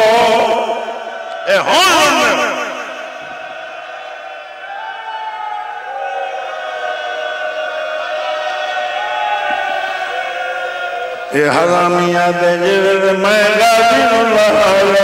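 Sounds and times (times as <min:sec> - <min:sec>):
voices chanting together: 0:00.0 - 0:05.0.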